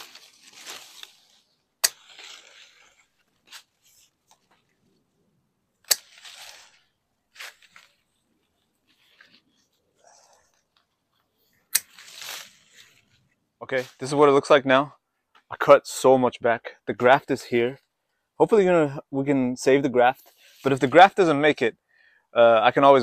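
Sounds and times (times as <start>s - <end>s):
pruners snipping branches: 0.0s - 4.4s, 5.8s - 6.8s, 11.7s - 12.5s
leafy branches rustling: 0.0s - 4.9s, 5.9s - 10.8s, 11.7s - 14.2s.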